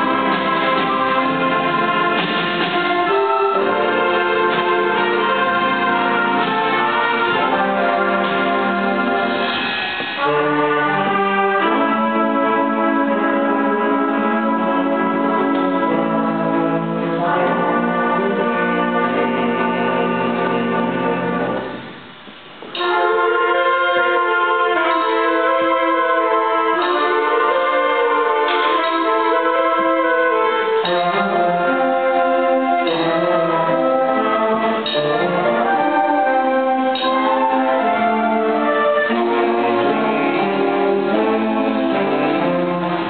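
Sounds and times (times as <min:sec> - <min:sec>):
concert band playing: 0:00.0 - 0:43.0.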